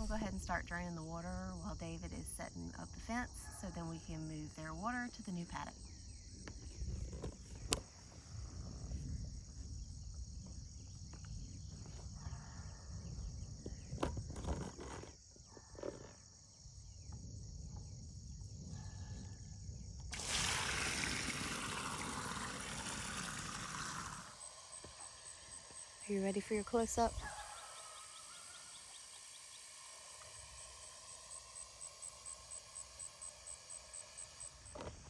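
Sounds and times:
crickets chirping: 0:00.0 - 0:35.0
water gushing from drain: 0:20.1 - 0:25.4.

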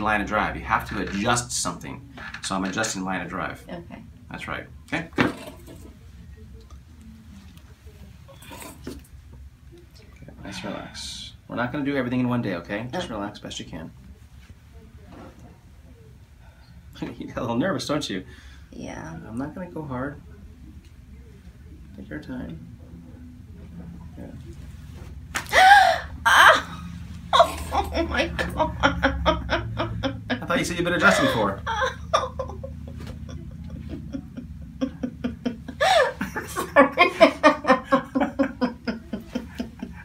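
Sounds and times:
low room hum: 0:00.0 - 0:40.0
woman gasping cry: 0:25.5 - 0:26.8.

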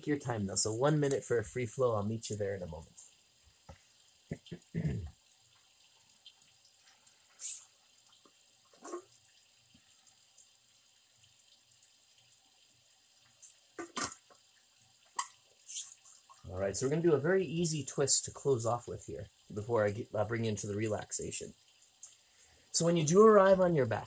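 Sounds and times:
short hiss: 0:07.4 - 0:07.7
gulp of water: 0:13.8 - 0:14.2.

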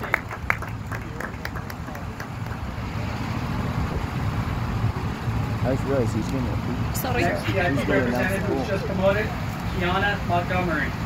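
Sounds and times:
scattered handclaps: 0:00.0 - 0:02.7
low outdoor rumble: 0:00.0 - 0:11.0
faint crowd chatter: 0:05.6 - 0:11.0.

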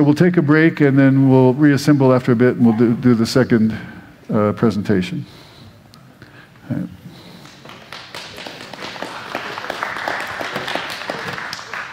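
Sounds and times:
audience applauding: 0:07.4 - 0:11.9.

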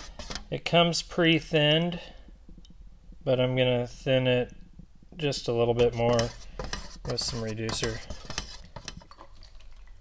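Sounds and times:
stir stick scraping metal paint can: 0:00.0 - 0:00.8, 0:05.4 - 0:09.5.

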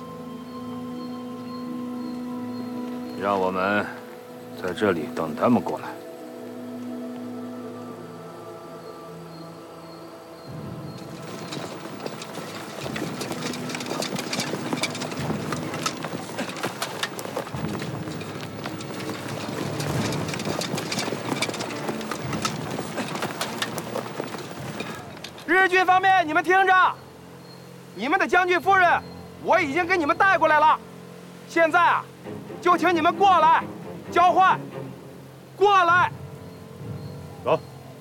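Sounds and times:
soundtrack music with held notes: 0:00.0 - 0:25.3, 0:32.0 - 0:38.0
footsteps crunching through dry grass: 0:11.0 - 0:25.2.

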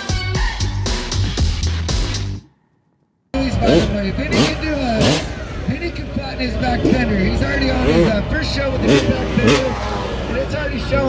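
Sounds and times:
background music: 0:00.0 - 0:02.6
announcer over loudspeakers: 0:03.4 - 0:11.0
motorcycle engine revving: 0:03.4 - 0:11.0.

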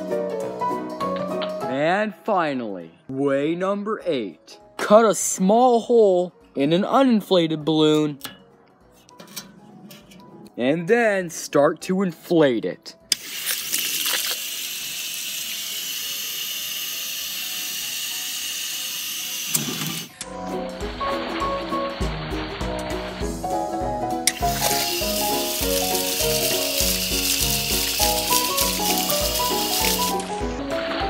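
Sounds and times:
running water: 0:13.2 - 0:14.5, 0:24.3 - 0:30.3
music with steady beat: 0:20.3 - 0:31.0
water balloon bursting: 0:24.3 - 0:30.3
water spraying hiss: 0:24.3 - 0:30.3.

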